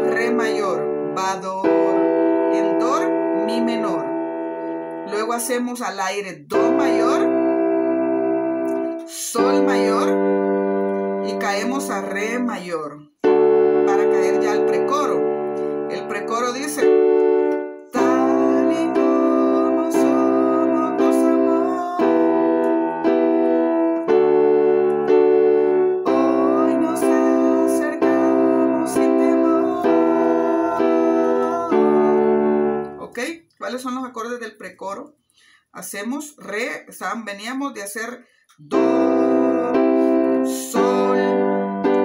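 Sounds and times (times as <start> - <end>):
digital keyboard block chords: 0.0 - 34.1, 38.6 - 42.0.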